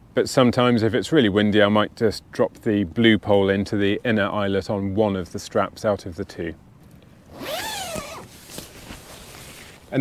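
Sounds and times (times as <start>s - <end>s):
tent door zip opening: 7.3s - 9.8s.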